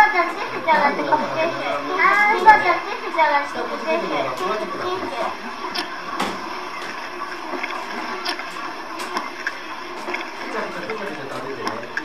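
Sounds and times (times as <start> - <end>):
quiet voices: 0.0 - 5.6
child chewing with wet smacking: 5.7 - 6.9.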